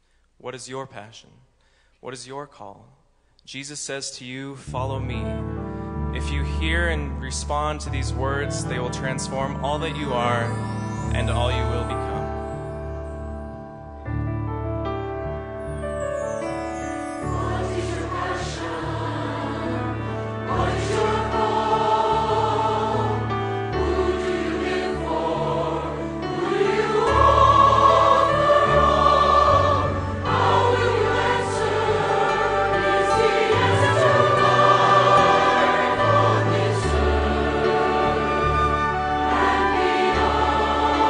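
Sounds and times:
orchestral accompaniment: 4.8s - 41.0s
choir singing: 17.0s - 41.0s.

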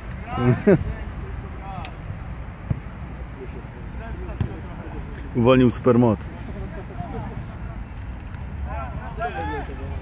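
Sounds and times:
steady background noise: 0.0s - 10.0s
ball kick thuds: 2.6s - 2.9s
distant players shouting: 8.6s - 10.0s.

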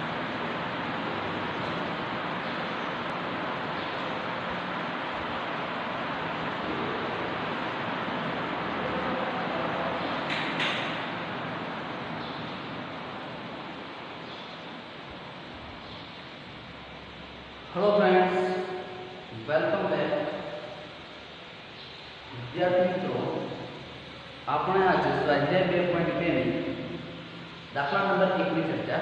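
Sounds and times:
steady background noise: 0.0s - 29.0s.

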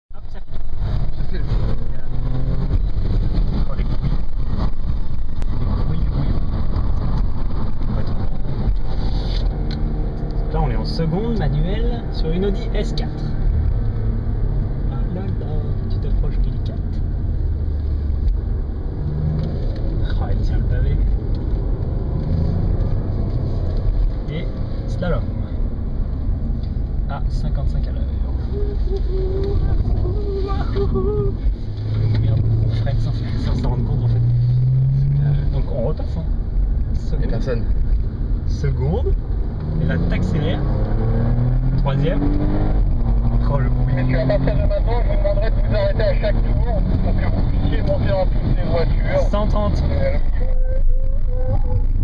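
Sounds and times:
tyre and road noise: 0.1s - 52.0s
car engine revving: 0.2s - 52.0s.

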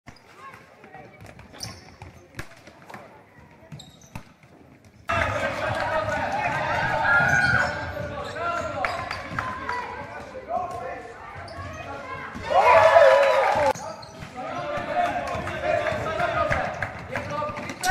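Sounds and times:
basketball bouncing on court: 0.1s - 12.6s
voices and calls in a hall: 5.0s - 17.9s.

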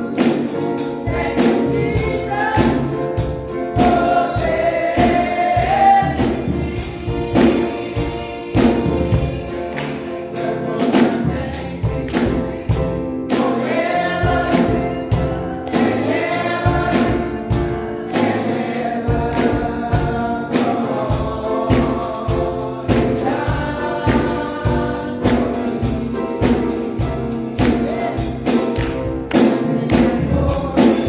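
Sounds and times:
keyboard accompaniment: 0.0s - 31.0s
women singing gospel: 0.0s - 31.0s
steady beat: 0.1s - 31.0s.

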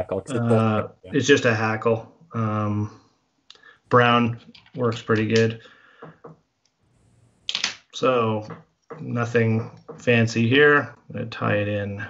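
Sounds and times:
man talking: 0.0s - 3.0s, 3.9s - 5.7s, 8.0s - 12.0s.

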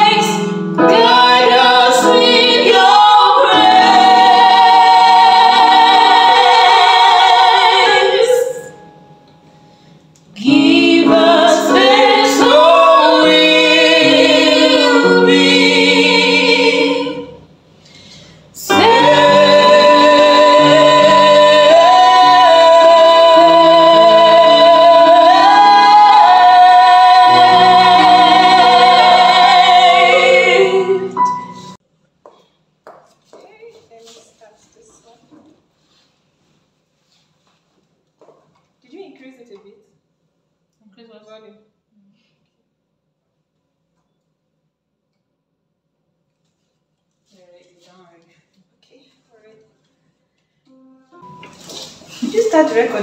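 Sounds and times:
women singing in harmony: 0.0s - 8.8s, 10.4s - 17.4s, 18.6s - 31.8s.

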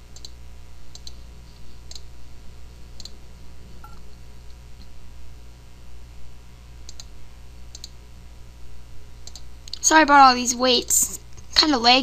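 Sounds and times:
low steady hum: 0.0s - 12.0s
computer mouse clicking: 0.2s - 1.2s, 1.9s - 2.1s, 3.0s - 3.2s, 6.8s - 7.1s, 7.7s - 8.0s, 9.2s - 9.8s.

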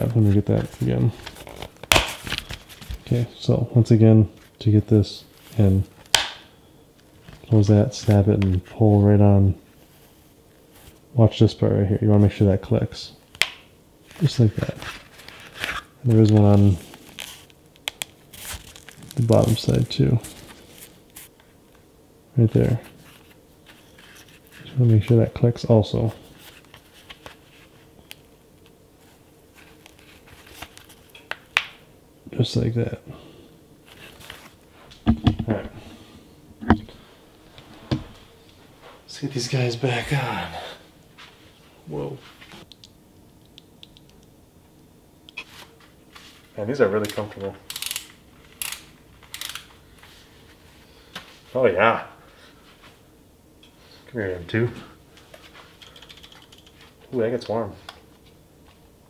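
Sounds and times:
plastic rustling and crinkling: 0.0s - 3.2s, 14.0s - 21.3s.

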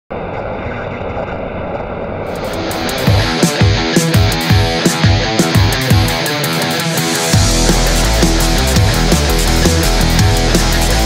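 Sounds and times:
dense rumbling noise: 0.1s - 3.9s.

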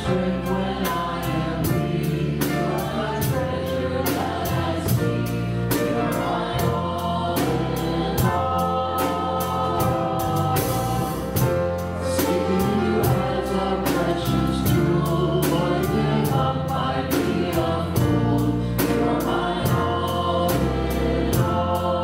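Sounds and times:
band playing worship song: 0.0s - 22.0s
group of singers: 0.0s - 22.0s.

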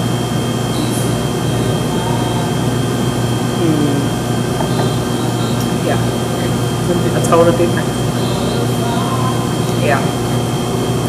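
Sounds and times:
mechanical room hum and hiss: 0.0s - 11.0s
thin high-pitched whine: 0.0s - 11.0s.

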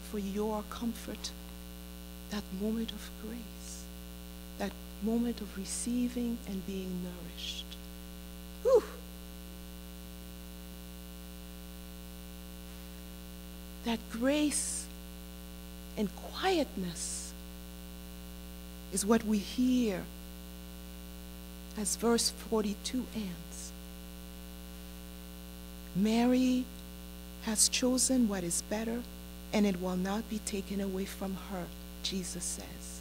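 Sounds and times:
electrical mains hum: 0.0s - 33.0s.

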